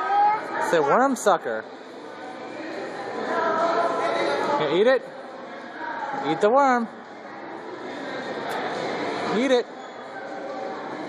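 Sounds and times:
hubbub in a tiled room: 0:00.0 - 0:11.0.

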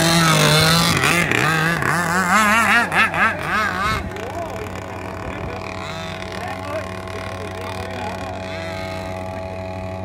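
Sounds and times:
model boat engine at high speed: 0:00.0 - 0:10.0.

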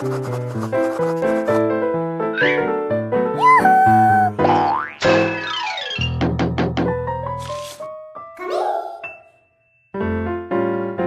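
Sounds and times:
cartoon background music: 0:00.0 - 0:11.0
comic pitch glide up: 0:03.4 - 0:04.4
comic pitch slide down: 0:03.4 - 0:04.4.

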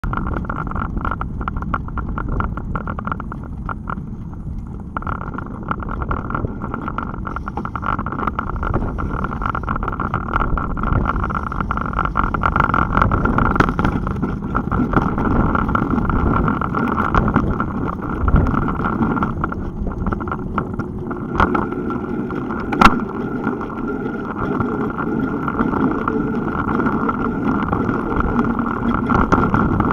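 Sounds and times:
small rattling clicks: 0:00.0 - 0:29.9
tyre rumble over rough asphalt: 0:00.0 - 0:29.9
wind on microphone: 0:00.0 - 0:29.9.

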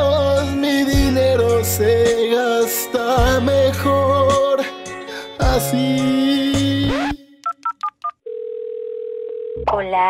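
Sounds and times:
music: 0:00.0 - 0:07.4
phone keypad dialing tones: 0:07.4 - 0:09.7.

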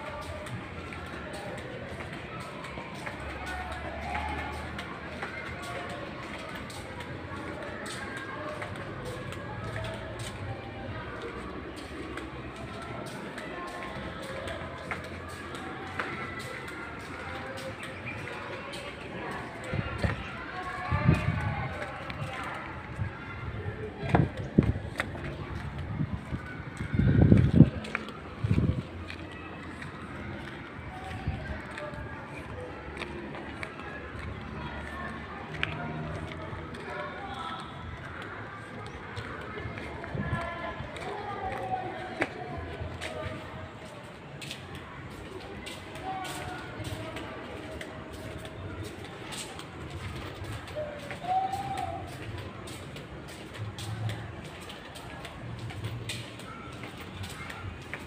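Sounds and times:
distant voices: 0:00.0 - 0:58.0
footsteps walking: 0:00.0 - 0:58.0.

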